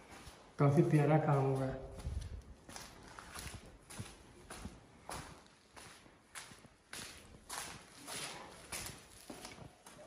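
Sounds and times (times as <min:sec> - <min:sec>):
footsteps on hard floor and stone stairs: 0:00.0 - 0:10.0.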